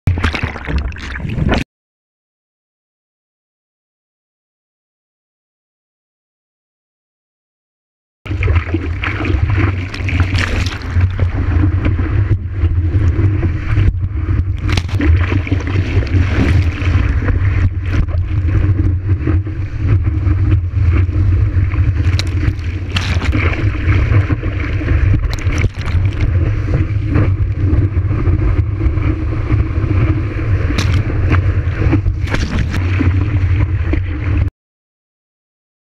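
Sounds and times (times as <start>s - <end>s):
water rushing: 8.3s - 34.5s
wind buffeting camera: 9.2s - 34.4s.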